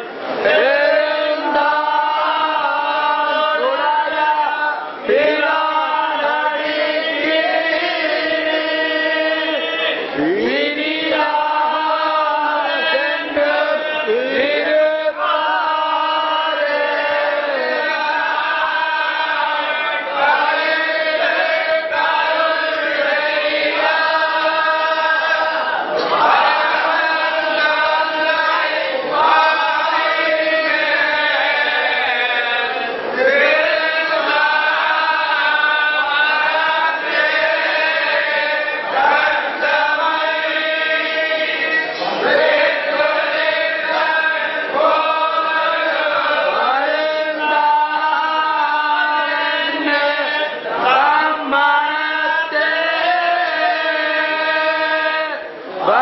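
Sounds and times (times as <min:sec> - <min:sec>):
men chanting in unison: 0:00.4 - 0:56.0.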